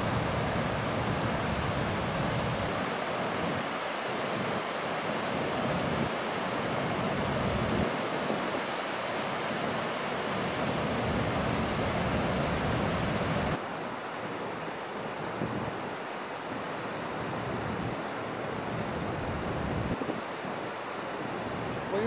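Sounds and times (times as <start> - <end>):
river rapids rushing: 0.0 - 19.5, 20.2 - 22.0.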